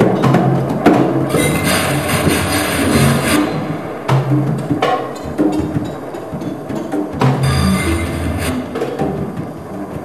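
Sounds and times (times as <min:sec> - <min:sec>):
low held tones: 0:00.0 - 0:10.0
scraping hissing percussion: 0:00.0 - 0:10.0.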